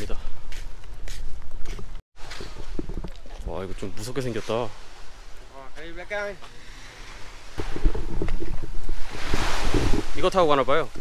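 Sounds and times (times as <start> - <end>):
wind buffeting microphone: 7.2 - 11.0.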